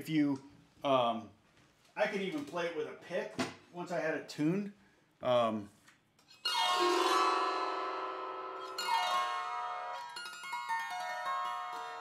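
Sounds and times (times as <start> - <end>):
zither notes plucked: 6.4 - 12.0
zither strummed: 6.4 - 12.0.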